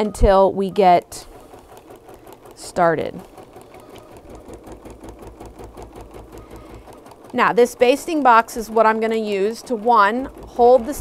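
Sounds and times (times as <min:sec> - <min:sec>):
embroidery machine stitching: 0:00.0 - 0:11.0.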